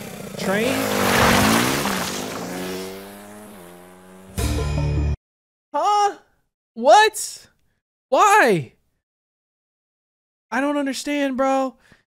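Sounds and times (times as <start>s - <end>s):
dirt bike engine pulling away: 0.0s - 4.6s.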